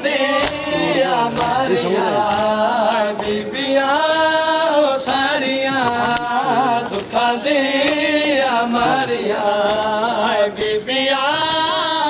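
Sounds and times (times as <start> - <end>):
man chanting a lament: 0.0 - 12.0.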